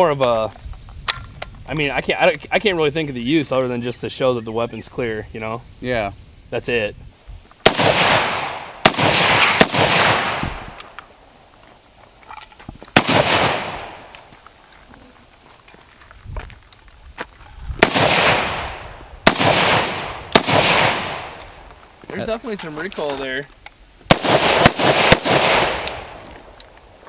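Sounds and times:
rifle shots with echo: 7.6 - 10.8, 13.0 - 14.1, 17.8 - 21.6, 24.1 - 26.3.

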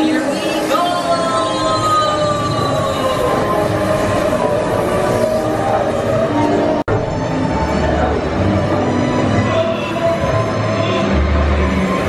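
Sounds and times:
ride vehicle rumbling on rail: 0.0 - 12.0.

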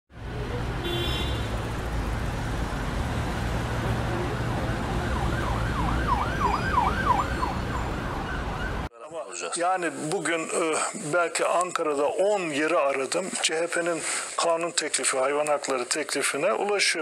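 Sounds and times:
street traffic rumble: 0.1 - 8.9
emergency siren yelping: 4.0 - 8.9.

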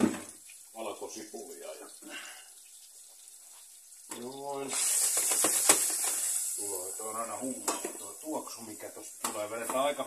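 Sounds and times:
garlic sizzling in oil: 0.0 - 10.0.

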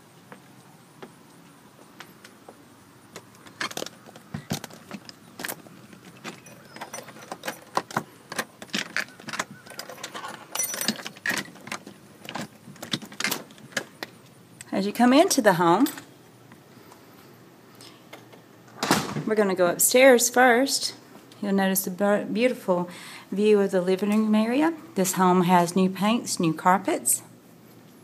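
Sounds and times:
keys jangling: 6.2 - 13.4.

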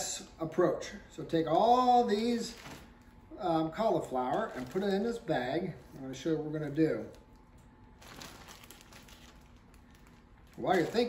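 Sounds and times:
plastic bag crinkling: 2.2 - 3.2, 3.9 - 5.4, 6.6 - 11.0.

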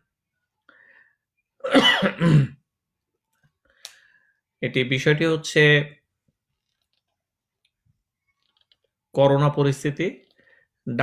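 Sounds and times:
man speaking: 4.6 - 6.0, 9.1 - 11.0.

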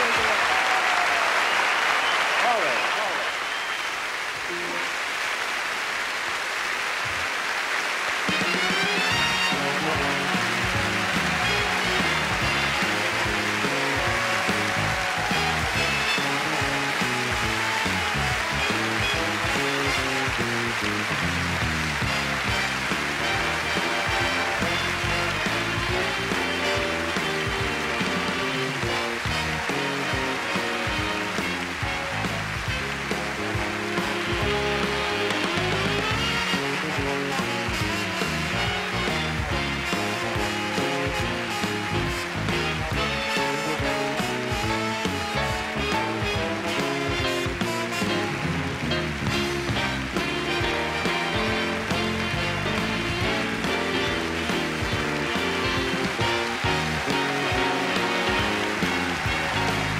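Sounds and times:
applause: 0.0 - 59.9
big band playing: 0.0 - 59.9.

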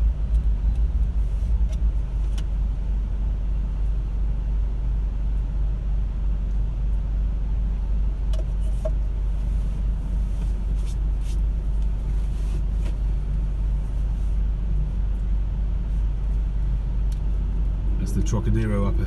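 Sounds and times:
car engine idling in cabin: 0.0 - 19.0.

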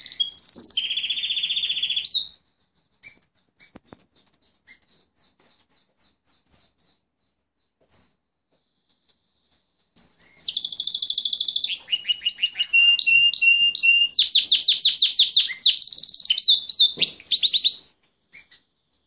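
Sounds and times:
canary singing trills: 0.0 - 19.0.

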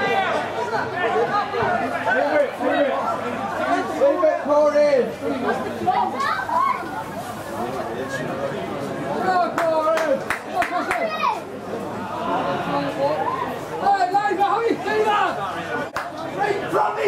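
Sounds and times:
people chattering: 0.0 - 17.0.

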